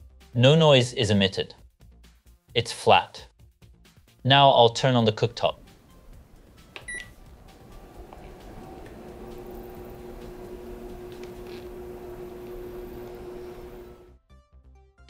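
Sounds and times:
cooktop electrical hum: 0:05.2 - 0:14.1
cooktop beep: 0:06.8 - 0:07.2.

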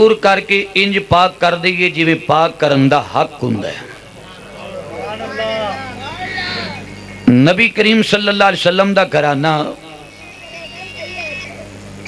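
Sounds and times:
electrical hum from microphone system: 0:00.0 - 0:12.0.

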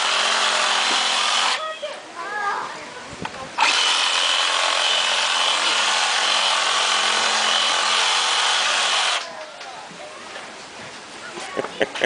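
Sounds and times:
reciprocating saw cutting pumpkin: 0:00.0 - 0:01.6, 0:03.6 - 0:09.3.

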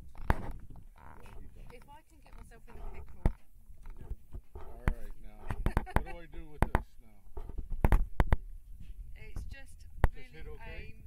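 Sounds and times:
sharp knocks and bumps: 0:00.0 - 0:08.4.

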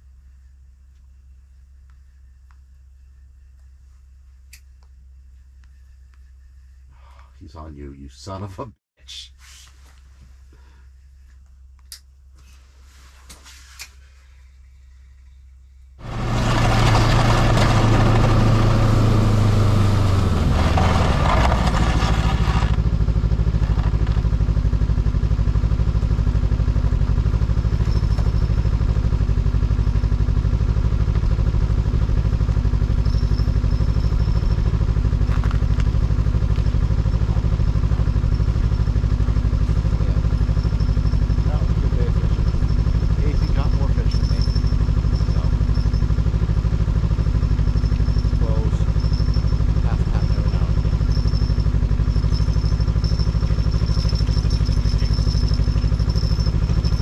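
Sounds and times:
small vehicle engine running: 0:16.0 - 0:57.0.

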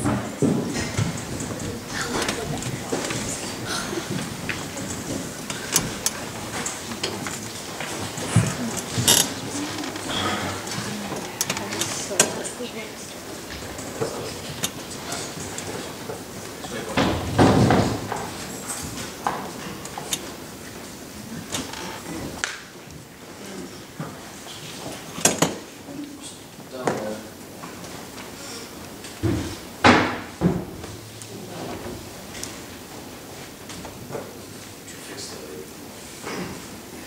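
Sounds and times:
footsteps on stage floor: 0:00.0 - 0:11.9
audience rustling: 0:00.0 - 0:37.0.

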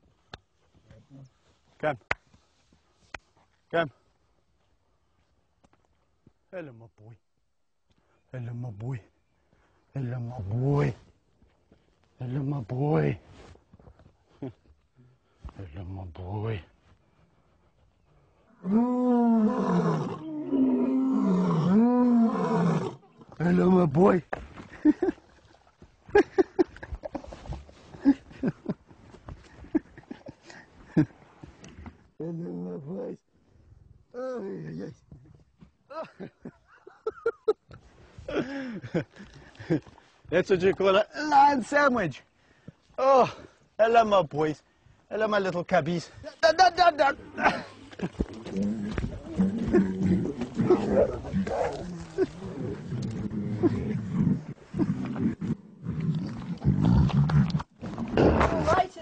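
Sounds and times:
lions calling: 0:48.2 - 0:58.7.

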